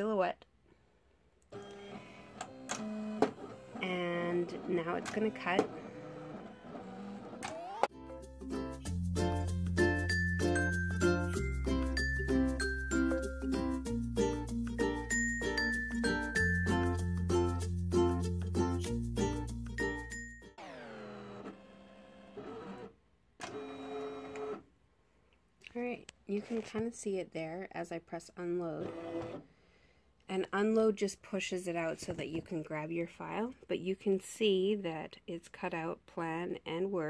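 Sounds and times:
cutting machine motors whirring: 1.5s - 7.9s, 20.6s - 24.6s, 28.8s - 29.4s
upbeat music with plucked notes: 7.9s - 20.6s.

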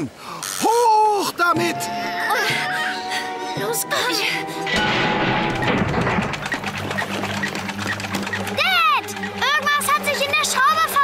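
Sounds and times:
background music: 1.4s - 11.0s
low crash and rumble: 4.7s - 7.8s.

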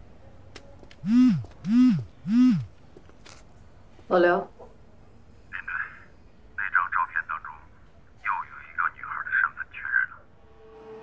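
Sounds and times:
person speaking over phone: 5.5s - 10.3s.

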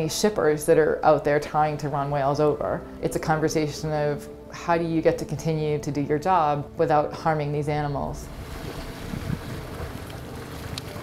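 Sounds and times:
low rumbling noise: 7.7s - 11.0s.

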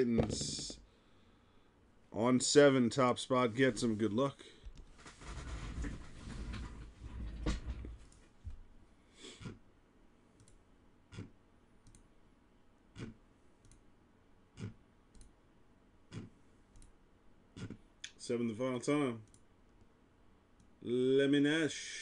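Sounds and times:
computer mouse clicks: 10.4s - 12.1s, 13.0s - 13.8s, 14.6s - 15.3s, 16.1s - 17.0s.

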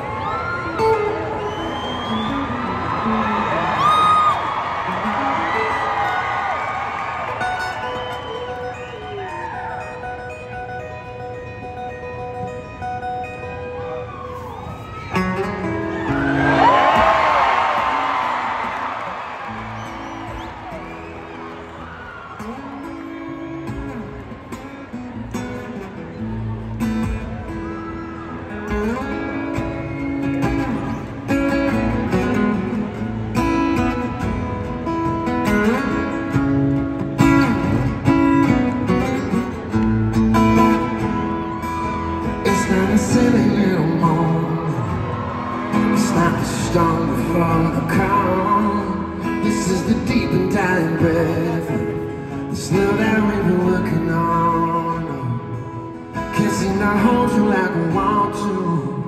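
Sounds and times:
audience cheering and whistling: 0.0s - 10.7s, 13.2s - 51.8s
acoustic guitar playing: 0.0s - 59.0s.

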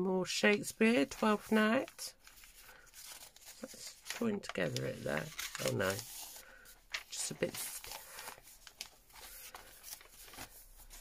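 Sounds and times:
paper pages being turned: 0.8s - 11.0s
paper brushing: 2.2s - 11.0s.

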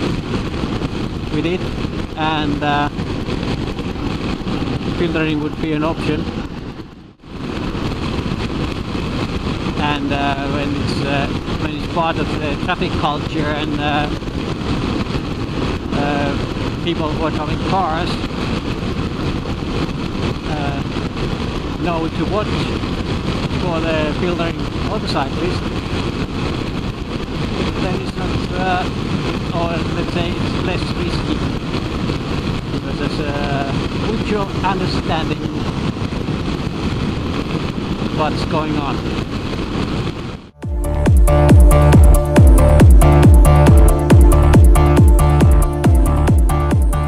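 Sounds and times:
wind and road noise: 0.0s - 47.0s
motorcycle engine running: 40.6s - 47.0s.

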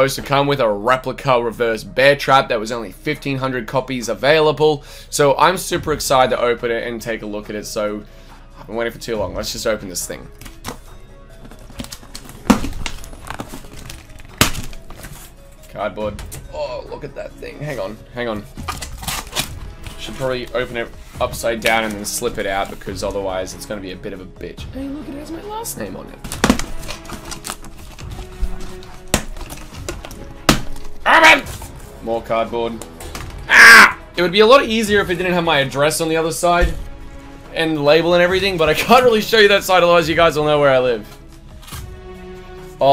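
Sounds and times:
background music: 0.0s - 42.9s
cardboard scraping and rustling: 10.6s - 15.6s, 26.3s - 31.9s
knife slicing packing tape: 18.6s - 19.6s.

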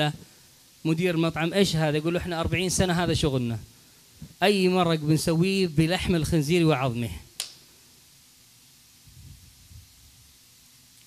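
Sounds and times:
sharp click: 7.4s - 7.6s.

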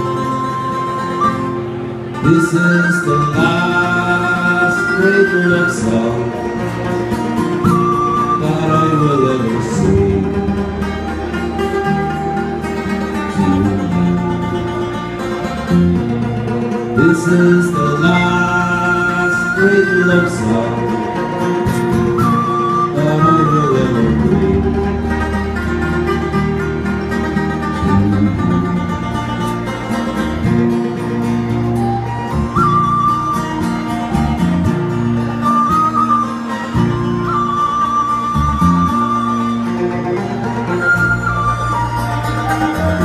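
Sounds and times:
tin whistle melody: 0.0s - 30.4s, 31.4s - 43.0s
acoustic guitar: 0.0s - 43.0s
banjo: 0.0s - 43.0s
electric bass: 0.0s - 43.0s
mandolin: 0.0s - 43.0s.

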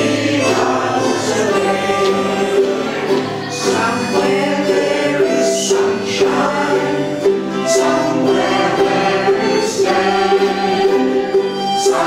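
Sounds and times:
group singing in unison: 0.0s - 12.0s
ukuleles strummed: 0.0s - 12.0s.

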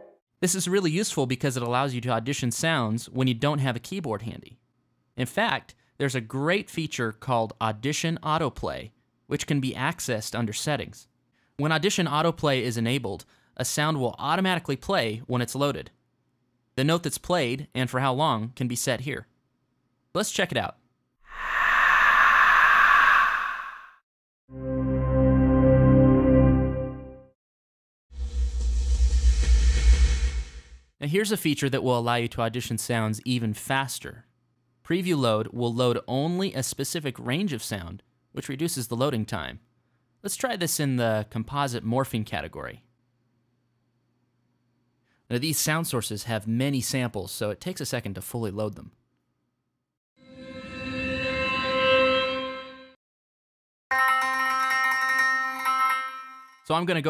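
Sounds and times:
breathy vocal noise sweep: 21.3s - 24.0s.

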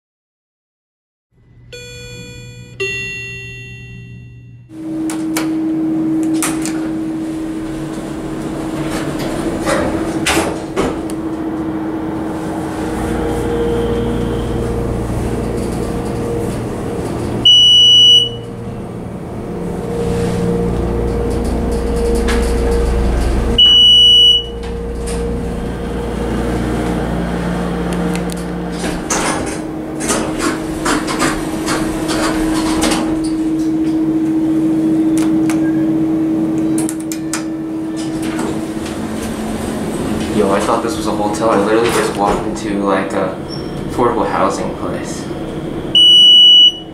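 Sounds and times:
elevator hum: 1.4s - 46.9s
elevator chime beep: 1.6s - 4.7s, 13.4s - 14.8s, 17.4s - 18.5s, 23.6s - 24.7s, 46.0s - 46.9s
ringing jingle notes: 1.7s - 4.7s.

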